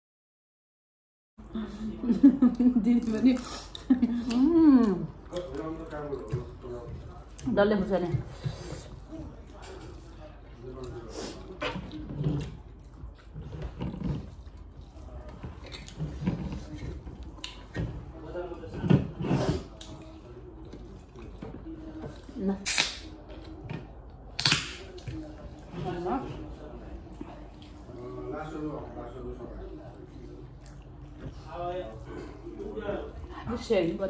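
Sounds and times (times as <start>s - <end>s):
eating and table sounds: 1.4s - 34.0s.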